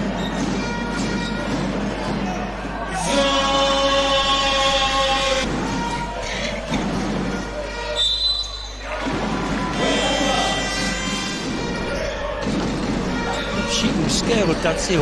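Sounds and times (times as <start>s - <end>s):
arena music: 0.0s - 15.0s
crowd voices: 0.0s - 15.0s.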